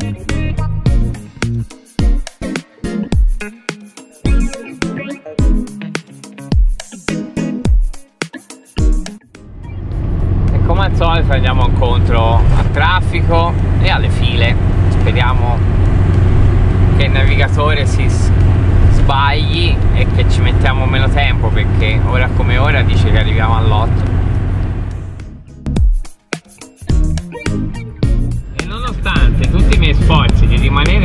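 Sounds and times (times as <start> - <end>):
engine and road rumble: 0.0 - 1.7, 9.4 - 25.9, 26.9 - 31.0.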